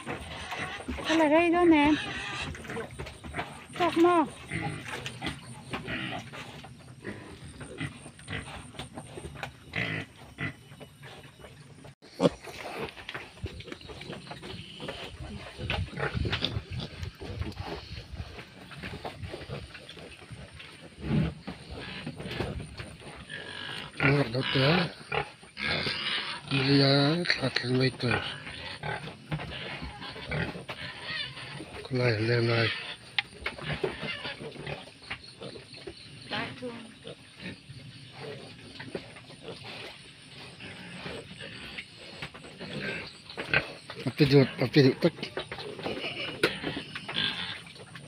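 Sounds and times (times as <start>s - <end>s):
piglets grunting: 12.0s - 35.7s, 36.3s - 47.7s.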